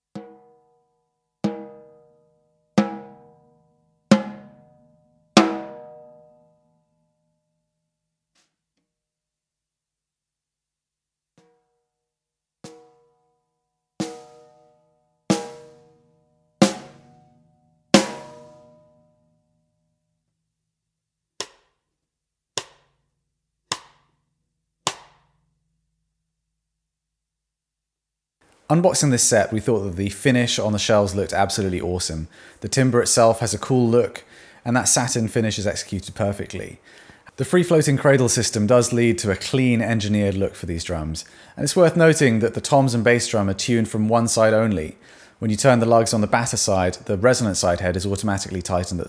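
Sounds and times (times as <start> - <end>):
snare drum struck with stick: 18.0 - 18.6, 23.7 - 24.0, 24.9 - 25.2.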